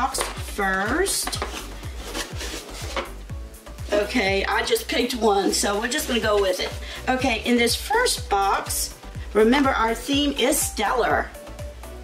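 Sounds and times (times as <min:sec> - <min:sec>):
background music with steady beat: 0:00.0 - 0:12.0
cardboard box rubbing and scraping: 0:01.2 - 0:03.2.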